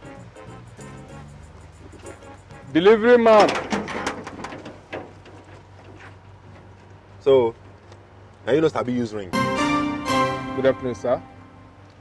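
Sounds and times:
metal gate rattling open: 2.0 - 5.5
low steady hum: 9.2 - 12.0.

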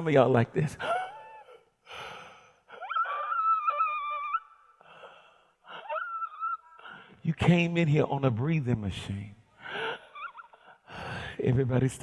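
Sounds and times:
man gasping: 9.6 - 11.4.

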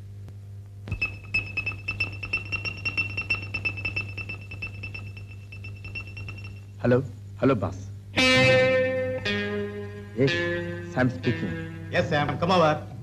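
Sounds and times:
low steady hum: 0.0 - 13.0
rapid irregular clicking: 0.9 - 6.7
high electronic tone: 0.9 - 6.8.

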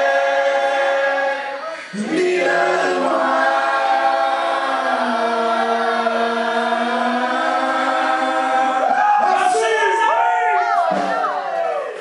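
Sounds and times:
voices singing held notes: 0.0 - 10.0.

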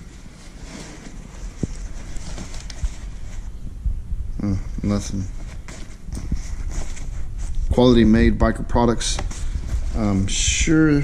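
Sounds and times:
leather rustling and rubbing: 0.0 - 3.6, 4.8 - 8.0, 9.0 - 11.0.

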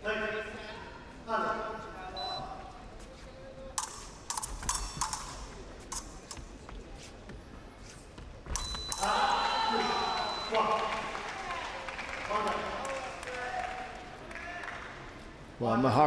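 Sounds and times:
fencing blades clicking: 3.8 - 6.5
scoring machine high tone: 8.6 - 10.6
loud shouting: 9.0 - 10.3.

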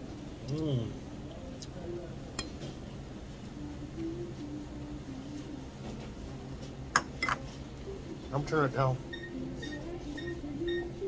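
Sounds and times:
tableware clink: 7.0 - 7.4.

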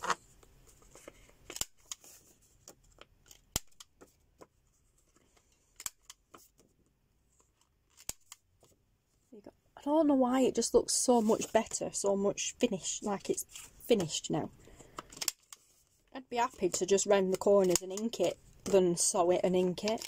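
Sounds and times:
paper rustling: 0.0 - 8.8, 11.2 - 11.8.

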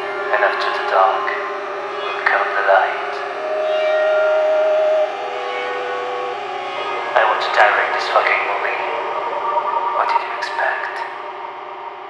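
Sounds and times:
droning synth pad: 0.0 - 12.0
held electronic tones: 1.1 - 8.0.

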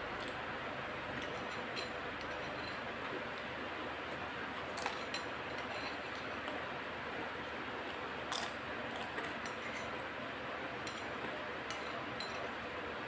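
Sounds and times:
metal spoon clinking glass bowl: 10.8 - 12.5.

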